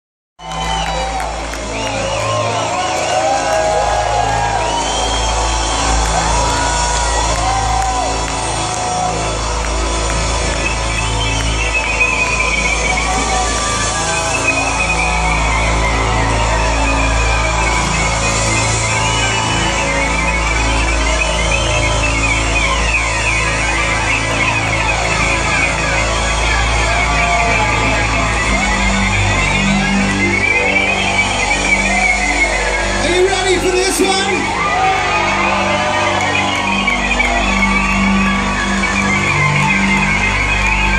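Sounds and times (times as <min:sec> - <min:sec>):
audience shouting and whistling: 0:00.4 - 0:40.9
steady bass: 0:00.4 - 0:40.9
rock band playing live: 0:00.5 - 0:40.9.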